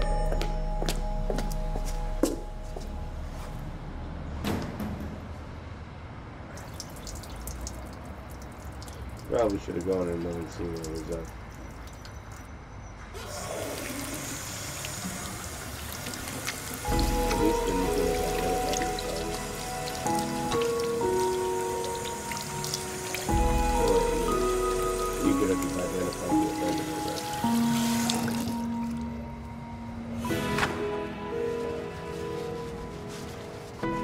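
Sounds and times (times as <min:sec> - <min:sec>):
film score sustained layered notes: 0:16.8 - 0:34.0.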